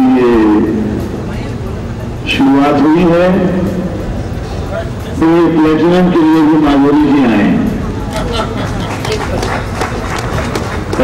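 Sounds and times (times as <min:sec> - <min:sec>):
audience applauding: 0:08.1 - 0:11.0.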